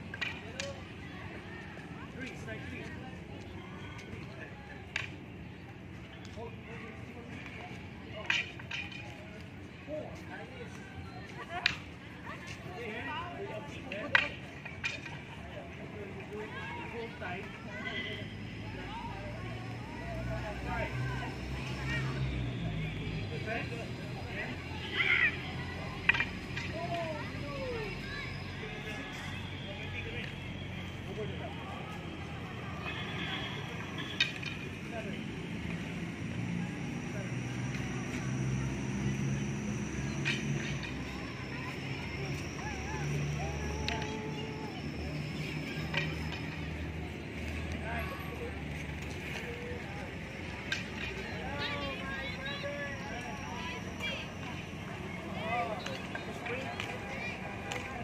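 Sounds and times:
sticks clacking: 26.0s - 27.0s, 33.8s - 34.9s.

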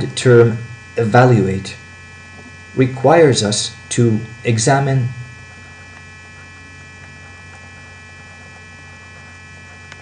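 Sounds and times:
electrical mains hum: 0.0s - 10.0s
faint ticks: 5.4s - 10.0s.

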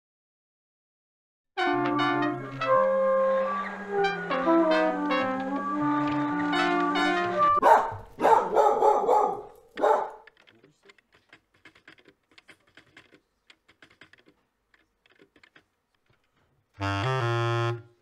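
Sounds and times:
brass intro jingle: 1.6s - 7.6s
faint scattered clicks: 9.5s - 16.5s
low bass clarinet note: 16.8s - 18.0s.

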